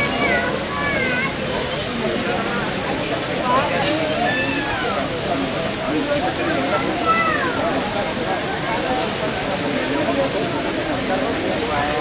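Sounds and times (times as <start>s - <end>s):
crowd talking: 0.0s - 12.0s
fountain water splashing: 0.0s - 12.0s.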